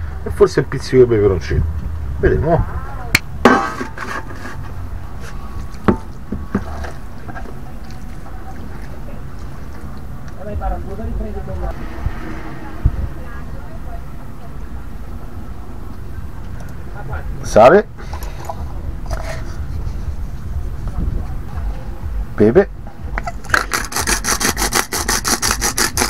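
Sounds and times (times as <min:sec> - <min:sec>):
steady low hum: 0:00.0 - 0:23.8.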